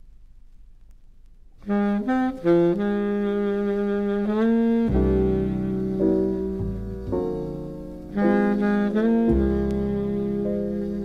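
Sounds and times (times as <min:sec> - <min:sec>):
faint low hum: 0:00.0 - 0:11.0
baritone saxophone low note: 0:01.6 - 0:11.0.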